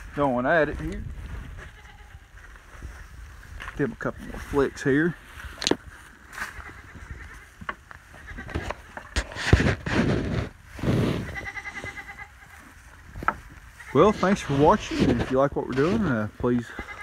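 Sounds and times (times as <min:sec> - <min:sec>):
cows snuffling: 0:00.0 - 0:17.0
rustling hay: 0:00.0 - 0:17.0
cows eating hay: 0:08.8 - 0:17.0.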